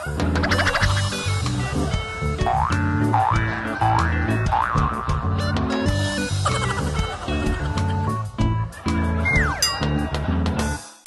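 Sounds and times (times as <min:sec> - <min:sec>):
upbeat music with bass beat: 0:00.0 - 0:11.0
comic boing sound effect: 0:02.4 - 0:05.3.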